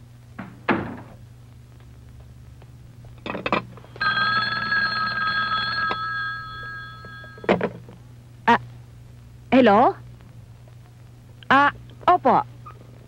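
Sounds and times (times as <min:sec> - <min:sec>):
telephone bell ringing: 0:04.0 - 0:07.6.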